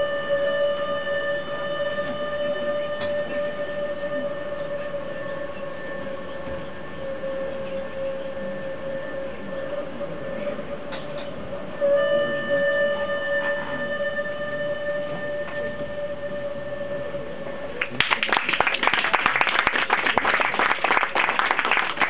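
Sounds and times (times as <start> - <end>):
hurdy-gurdy drone note: 0.0 - 17.8
audience applause: 17.8 - 22.0.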